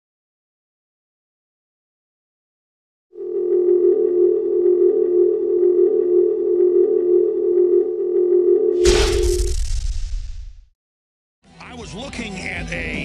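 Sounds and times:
steady electronic tone: 3.2 - 9.7.

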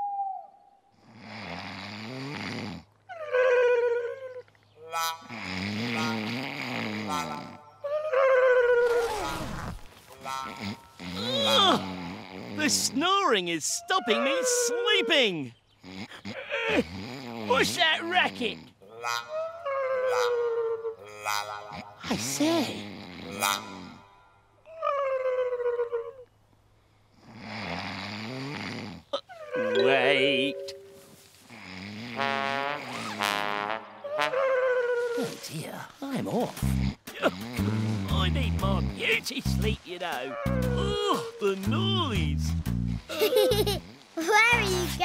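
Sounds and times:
comic snoring with falling whistle: 1.0 - 2.9, 5.3 - 7.6, 10.5 - 12.6, 15.8 - 17.5, 27.3 - 29.9, 36.6 - 38.1.

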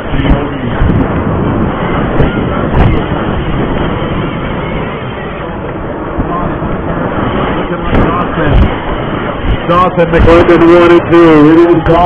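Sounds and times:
wind roaring over microphone: 0.0 - 12.0.

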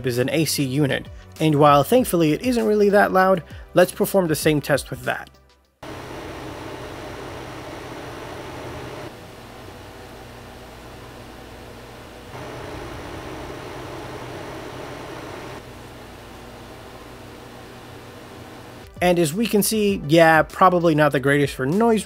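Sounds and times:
air conditioner fan rush: 5.8 - 18.8
low hum: 12.2 - 18.9.

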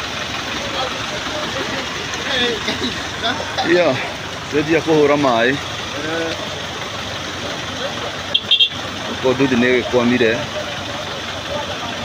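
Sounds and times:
traffic engines idling: 0.0 - 12.0
people talking: 0.5 - 6.6, 7.3 - 8.4, 9.0 - 12.0.

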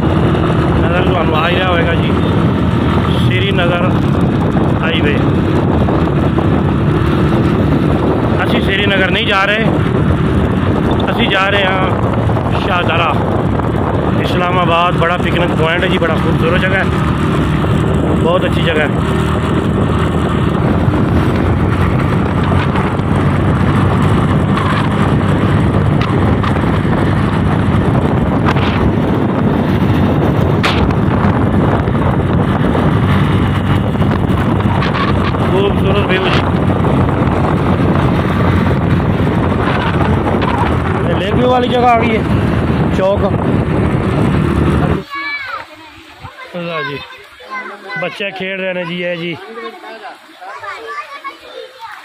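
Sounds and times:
wind rush: 0.0 - 47.4
road and engine noise: 0.0 - 52.0
wind buffeting microphone: 0.0 - 52.0.

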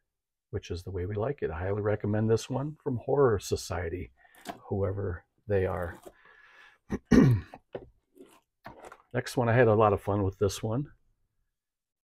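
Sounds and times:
man clearing his throat: 6.9 - 7.6
plastic case clicks and scrapes: 7.6 - 9.1.

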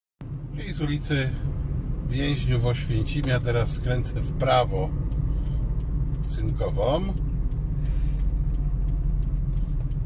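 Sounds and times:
car engine and road noise: 0.2 - 10.0.

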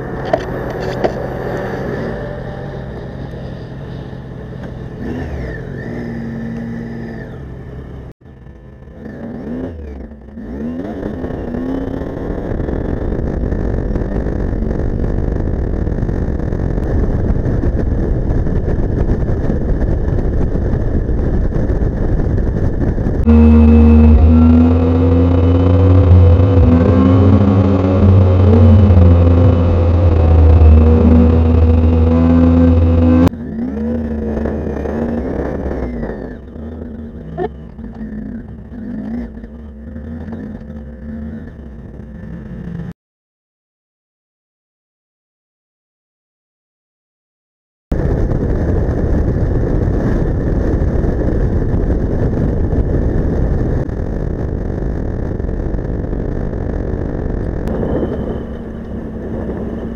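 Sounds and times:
motorcycle engine: 0.0 - 42.9, 48.0 - 59.9
wind and road noise: 0.0 - 42.9, 47.9 - 59.9
deep engine drone: 0.0 - 43.0, 47.9 - 59.9.

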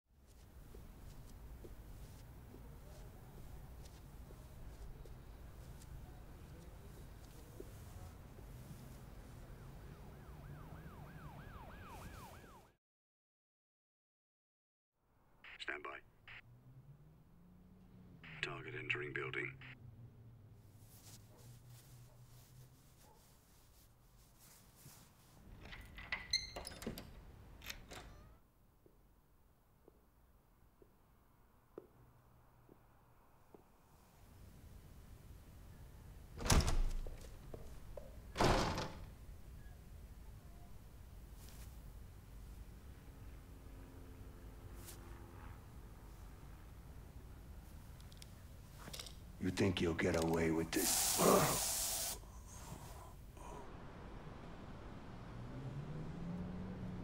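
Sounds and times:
emergency siren yelping: 9.4 - 12.7.

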